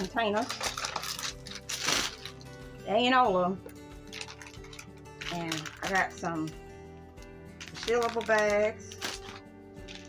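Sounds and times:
plastic bags rustling: 0.0s - 2.6s, 4.1s - 6.5s, 7.6s - 10.0s
background music: 0.0s - 10.0s.

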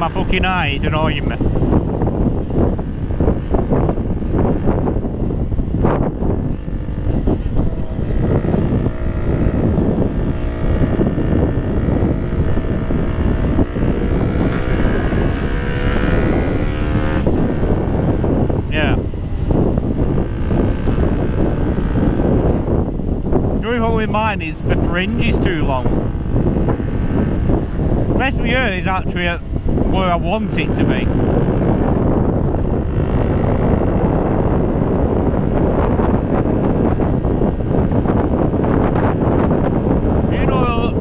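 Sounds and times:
motorcycle engine: 0.0s - 41.0s
wind rush: 0.0s - 41.0s.

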